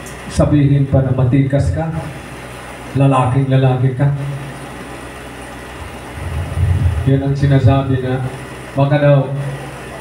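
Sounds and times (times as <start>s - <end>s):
steady background hum: 0.0s - 10.0s
man's amplified speech: 7.0s - 9.4s.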